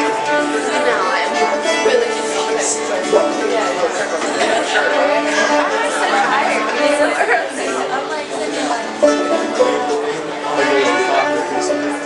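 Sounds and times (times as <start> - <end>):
fiddle and banjo playing: 0.0 - 12.0
people chattering: 0.0 - 12.0.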